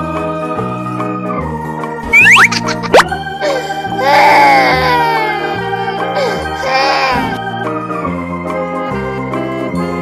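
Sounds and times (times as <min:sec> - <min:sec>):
background music with bass line: 0:02.0 - 0:03.4
cartoon whistle glides: 0:02.1 - 0:03.1
sharp upward sweep: 0:02.1 - 0:03.1.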